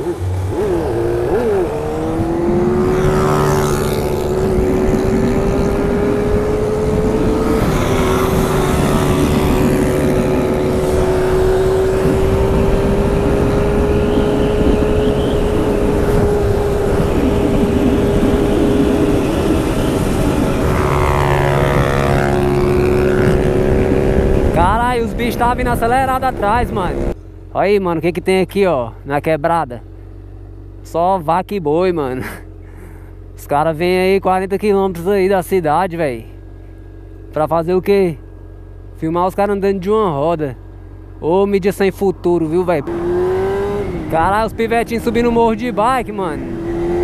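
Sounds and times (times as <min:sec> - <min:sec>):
wind rushing over microphone: 0:00.0 - 0:27.2, 0:42.2 - 0:47.0
motorcycle engine cruising: 0:00.0 - 0:47.0.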